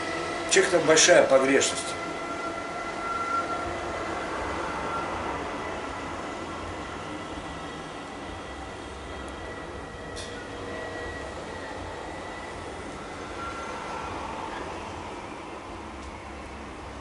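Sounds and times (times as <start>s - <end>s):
faint high whines: 0.0s - 17.0s
mechanical rumble and hiss: 0.0s - 17.0s.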